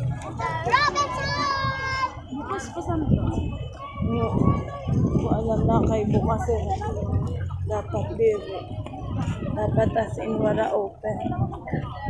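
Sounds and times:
street and crowd rumble: 0.0 - 12.0.

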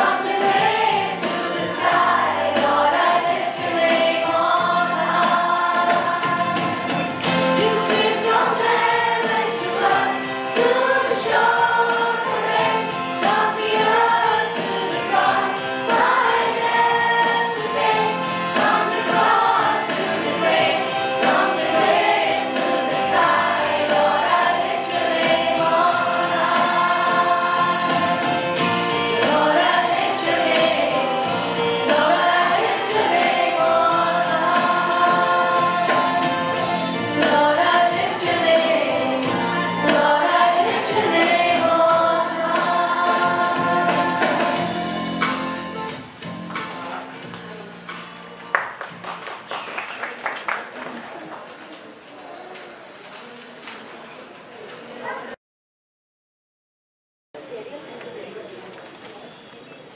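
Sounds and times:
group of voices singing: 0.0 - 45.6
music with steady beat: 0.0 - 48.9.

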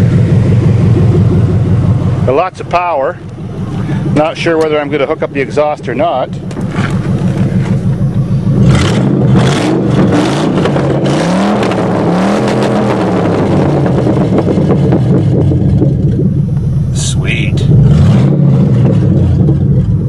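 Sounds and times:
engine revving without exhaust: 0.0 - 20.0.

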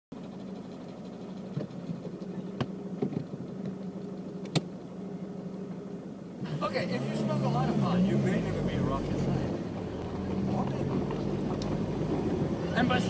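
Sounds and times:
car engine running at low speed: 0.1 - 13.0.

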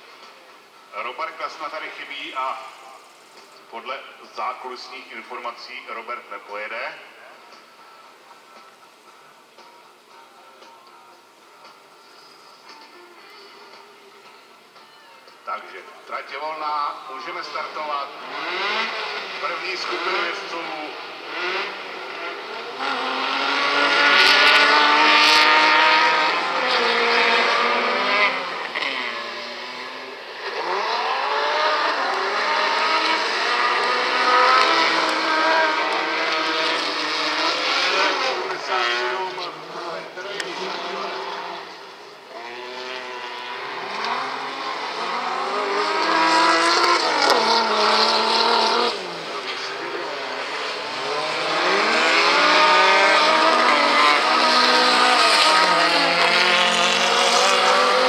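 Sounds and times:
racing car engines revving: 0.0 - 10.1, 15.4 - 58.0.

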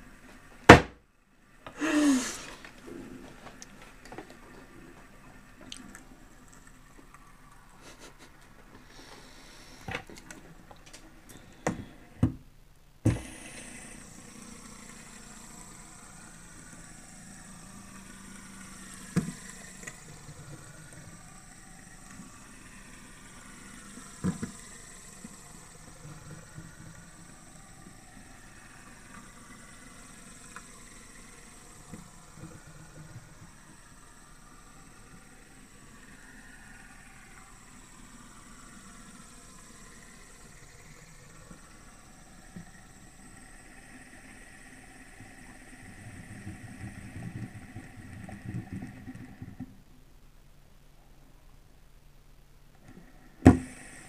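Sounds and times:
metal fidget spinner whirring: 1.4 - 12.2, 13.0 - 49.9, 52.8 - 54.0.

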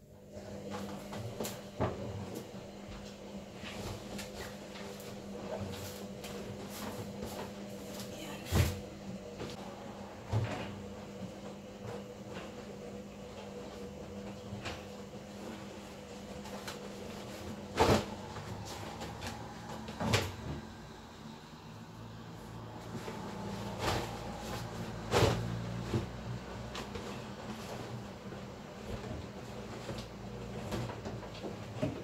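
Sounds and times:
laundry rustling: 9.6 - 32.0
laundry knocks and bumps: 14.5 - 20.8, 22.9 - 27.8.

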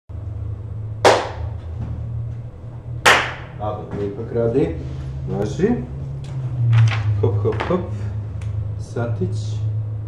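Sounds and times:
steady low hum: 0.1 - 10.0
sharp smack: 1.0 - 1.5, 3.1 - 3.5.

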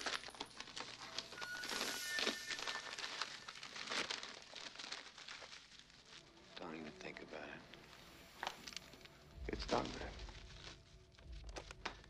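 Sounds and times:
paper rustling: 0.0 - 12.0.

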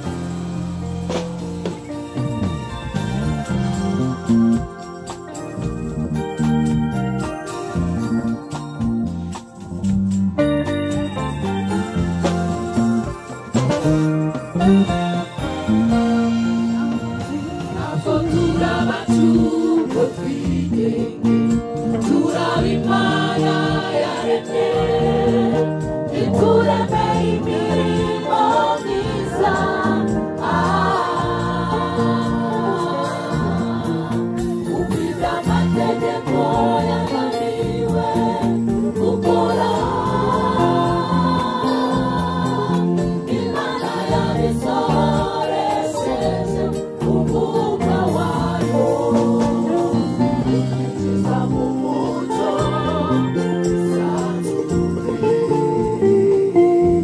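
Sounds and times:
gospel choir singing: 0.0 - 6.2, 14.1 - 57.0
electronic keyboards: 0.0 - 57.0.

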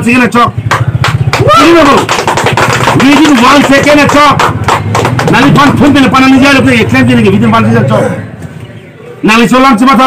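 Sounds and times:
man speaking excitedly: 3.0 - 4.4, 9.2 - 10.0.

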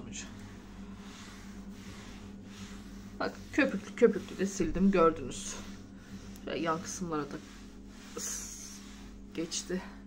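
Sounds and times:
steady low hum: 0.0 - 10.0
cloth rubbing on cabinet door: 0.4 - 10.0.

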